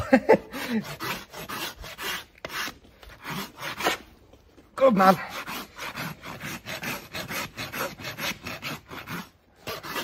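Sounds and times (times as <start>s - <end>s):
hoof rasp filing: 0.2s - 4.1s, 4.8s - 10.0s.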